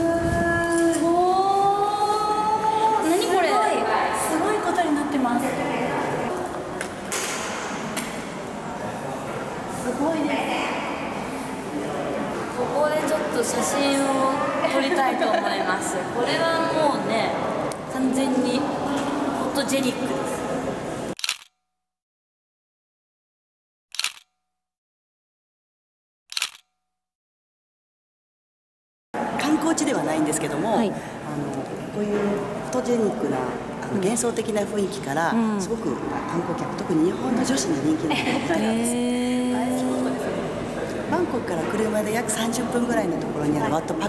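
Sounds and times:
camera shutter double click: 0:21.2 - 0:21.5, 0:23.9 - 0:24.3, 0:26.3 - 0:26.7.

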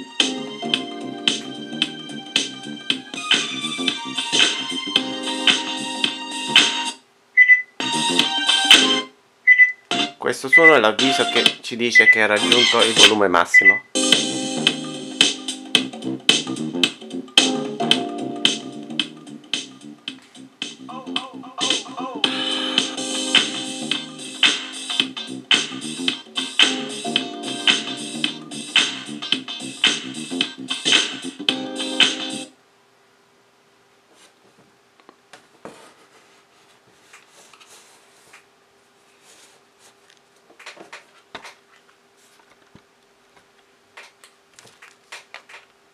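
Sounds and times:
music with steady beat: 0:00.0 - 0:07.0, 0:07.8 - 0:09.1, 0:09.9 - 0:10.2, 0:11.0 - 0:11.6, 0:14.0 - 0:32.5
faint steady hum: 0:32.5 - 0:45.9.

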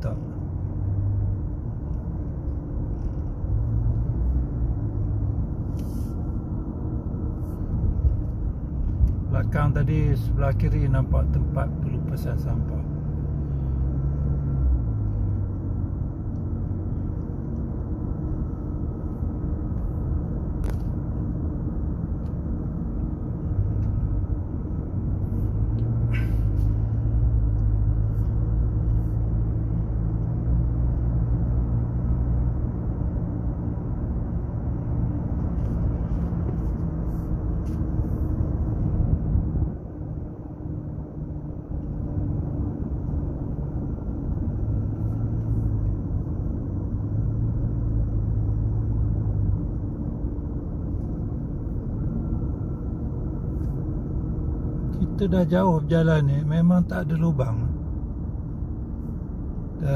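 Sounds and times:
car engine and tyre rumble: 0:00.0 - 0:59.9.

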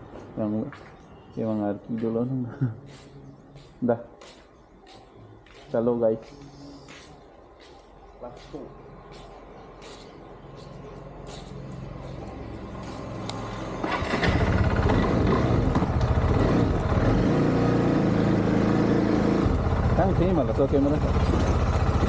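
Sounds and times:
motorcycle engine running: 0:12.0 - 0:22.0.

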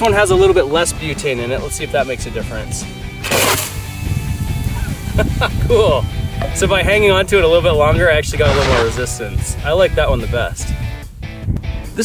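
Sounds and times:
background music: 0:08.3 - 0:09.9.

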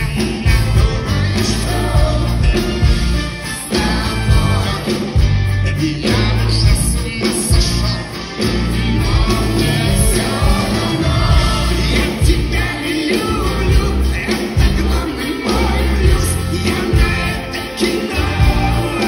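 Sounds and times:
live band music with heavy bass: 0:00.0 - 0:19.0
person singing: 0:03.5 - 0:19.0.

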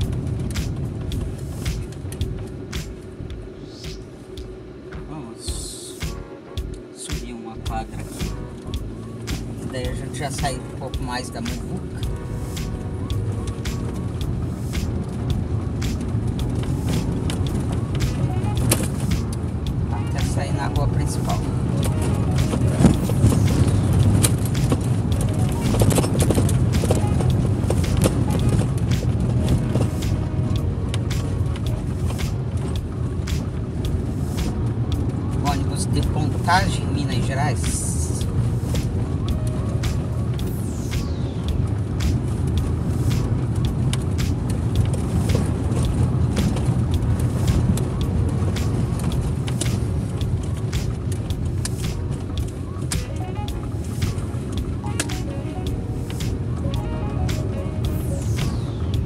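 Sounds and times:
car engine and tyre rumble: 0:00.0 - 0:59.0.

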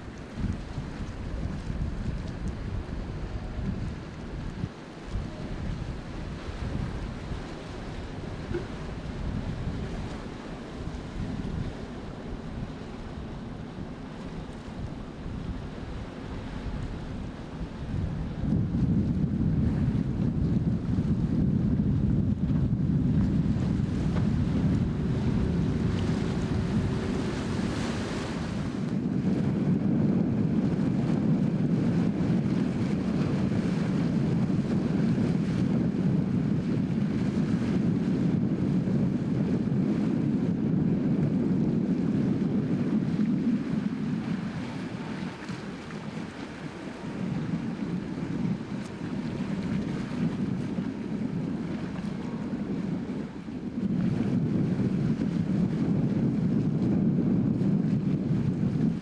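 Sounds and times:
boat engine: 0:00.0 - 0:59.0
waves: 0:00.0 - 0:59.0
wind rumbling on microphone: 0:00.0 - 0:59.0.

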